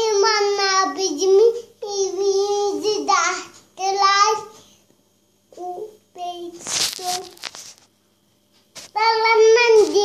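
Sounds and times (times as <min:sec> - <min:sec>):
toddler singing: 0:09.0 - 0:10.0.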